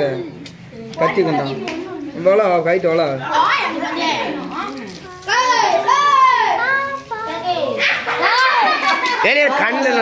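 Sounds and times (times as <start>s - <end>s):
children shouting: 5.2s - 10.0s.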